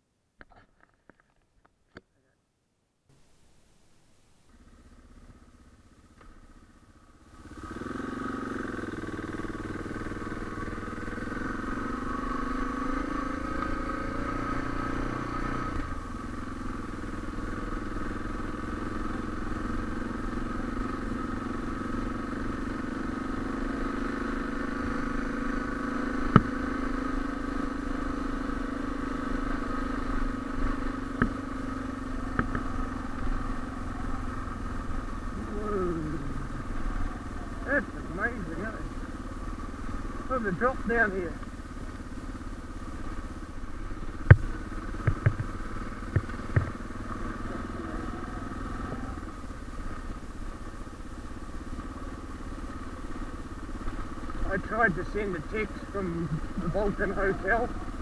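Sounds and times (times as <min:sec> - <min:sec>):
motorcycle engine running: 0:04.4 - 0:58.0.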